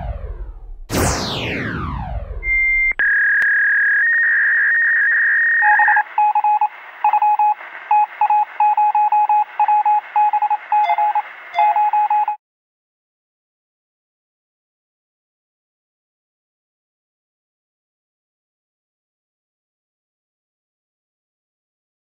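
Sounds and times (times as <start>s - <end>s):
short lower beeps: 2.4s - 3.0s, 5.6s - 12.4s
high beep: 2.4s - 3.2s, 5.6s - 12.4s
steady high phone tone: 5.6s - 12.4s.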